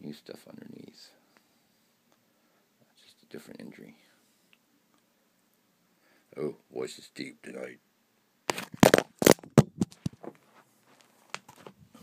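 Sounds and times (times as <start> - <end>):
knocks and scrapes on camera body: 8.5 - 10.4.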